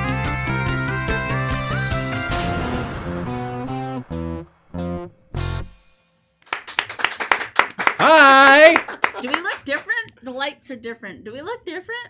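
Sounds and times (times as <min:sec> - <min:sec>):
quick hand claps: 0:06.4 - 0:09.9.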